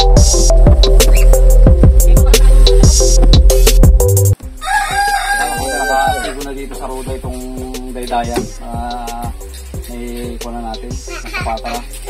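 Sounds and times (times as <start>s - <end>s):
background music with beat: 0.0s - 12.0s
rooster crowing: 4.5s - 6.6s.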